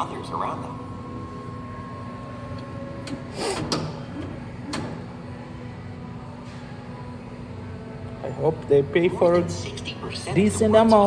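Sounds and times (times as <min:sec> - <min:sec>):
steady machine hum: 0:00.0 - 0:11.0.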